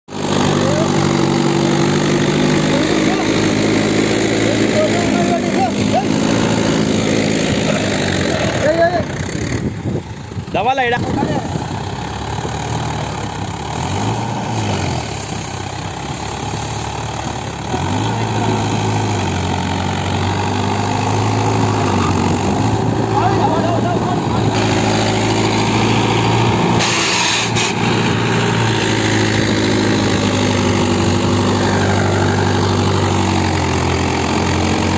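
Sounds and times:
tractor diesel engine running: 0:00.1 - 0:34.9.

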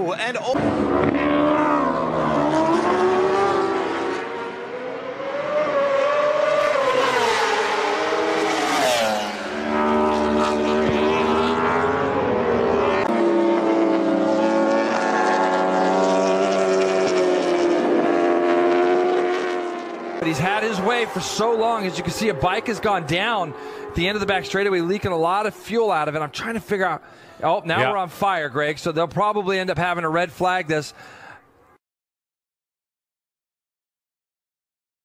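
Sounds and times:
racing motorcycle engines revving: 0:00.6 - 0:26.3.

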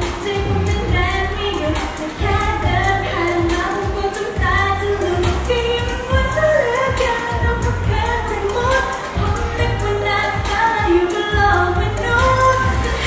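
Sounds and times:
backing track with pulsing bass: 0:00.0 - 0:13.0
girl singing pop song: 0:00.0 - 0:13.0.

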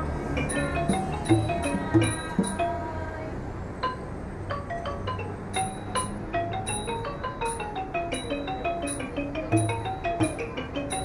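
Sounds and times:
xylophone runs: 0:00.3 - 0:03.0, 0:03.8 - 0:11.0.

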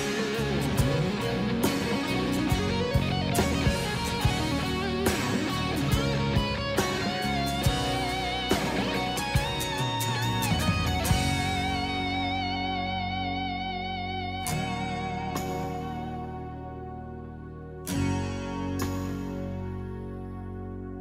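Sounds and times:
held guitar chord with vibrato: 0:00.0 - 0:20.8
rock music: 0:00.0 - 0:20.8
electric guitar: 0:00.0 - 0:21.0.

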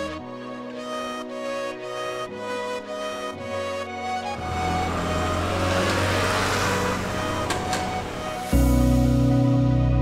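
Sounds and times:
background music: 0:00.0 - 0:10.0
passing road traffic: 0:03.0 - 0:09.7.

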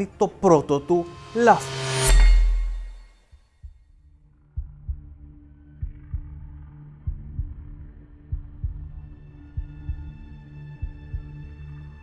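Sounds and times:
heartbeat thumps: 0:04.6 - 0:11.4.

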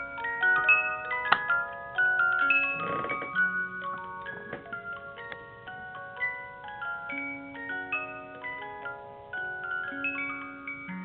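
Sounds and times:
cylinder music box playing: 0:00.0 - 0:11.0.

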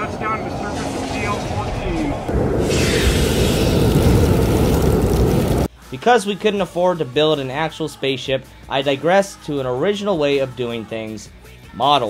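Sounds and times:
spaceship thrusters rushing: 0:00.0 - 0:05.7.

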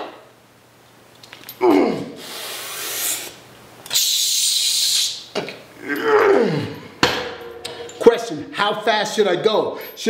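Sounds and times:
man groaning: 0:01.6 - 0:02.2, 0:05.8 - 0:07.0
man hissing exhale: 0:01.8 - 0:05.2.

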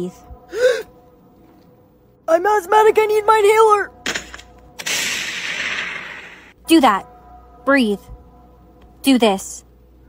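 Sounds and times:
hissing crash sound effect: 0:04.8 - 0:06.5.

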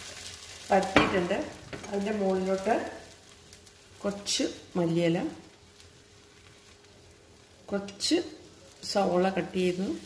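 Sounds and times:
batter sizzling on a hot pan: 0:00.0 - 0:10.0.

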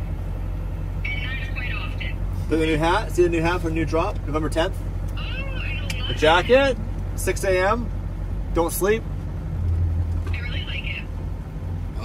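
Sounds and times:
vehicle rumble inside cab: 0:00.0 - 0:12.0.

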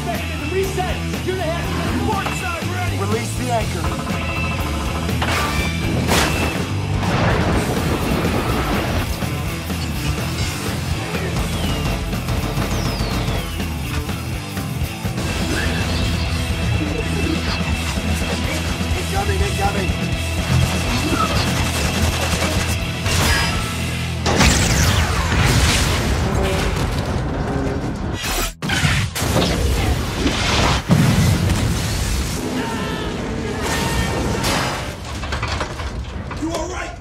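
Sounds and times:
action film score music: 0:00.0 - 0:31.0
battle booms and crashes: 0:05.9 - 0:09.1, 0:29.0 - 0:32.6.

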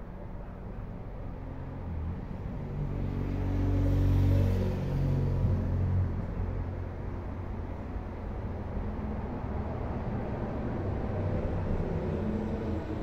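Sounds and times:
vehicle engine passing by: 0:01.9 - 0:06.9.

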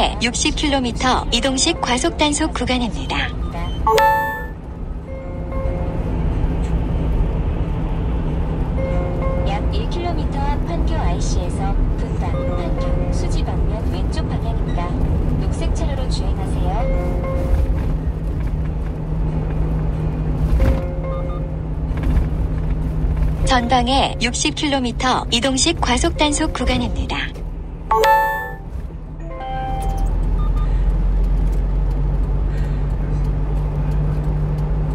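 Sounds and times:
road and engine rumble: 0:00.0 - 0:03.8, 0:04.5 - 0:27.9, 0:28.6 - 0:34.9.

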